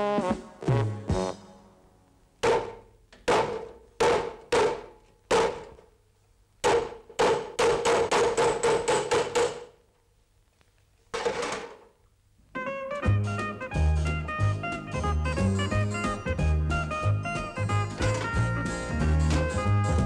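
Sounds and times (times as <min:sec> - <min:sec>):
jazzy music: 0:00.0 - 0:02.2, 0:12.6 - 0:20.0
hammer striking chisel on metal: 0:02.4 - 0:05.8, 0:06.6 - 0:09.8.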